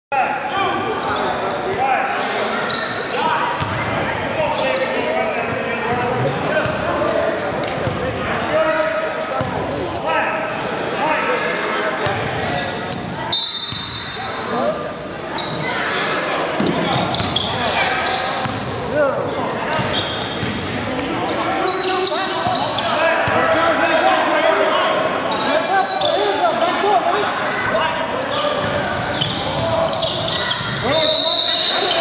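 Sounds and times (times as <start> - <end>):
players talking and shouting: 0.1 - 32.0.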